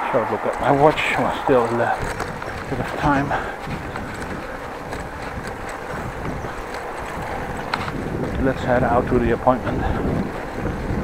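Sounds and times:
bicycle tyres rolling on bricks: 0.0s - 11.0s
wind rushing on microphone: 0.0s - 11.0s.

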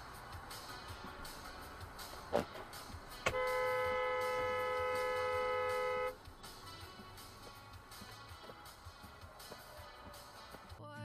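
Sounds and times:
car horn blast: 3.2s - 6.2s.

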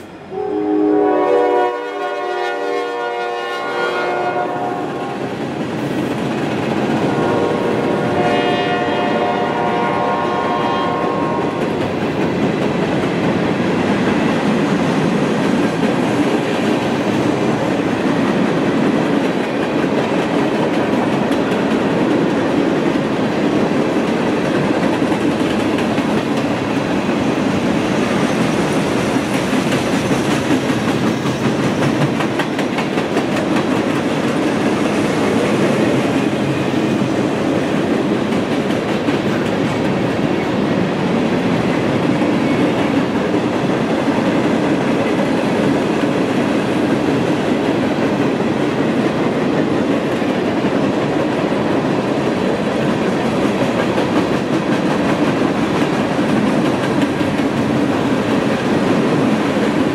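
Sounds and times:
freight train rolling past: 0.0s - 59.9s
train horn: 0.3s - 5.3s, 6.9s - 11.8s.

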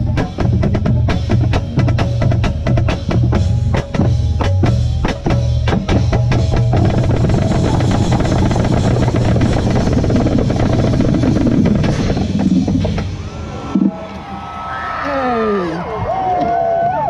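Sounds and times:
marching band playing: 0.0s - 14.4s.

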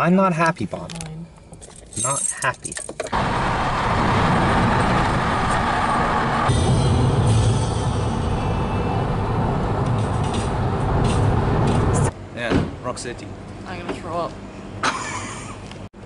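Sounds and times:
car road and engine noise: 0.6s - 16.0s.

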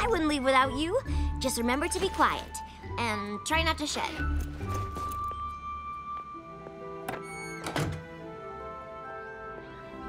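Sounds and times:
soft background music: 0.0s - 10.0s
door thunking shut: 7.0s - 8.1s.

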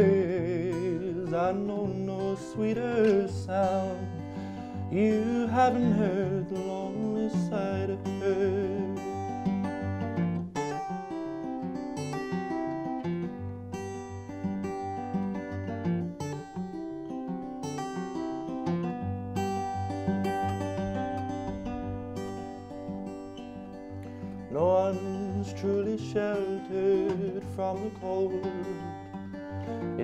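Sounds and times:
person singing: 0.0s - 9.2s, 24.4s - 30.0s
acoustic guitar picking: 0.0s - 30.0s.

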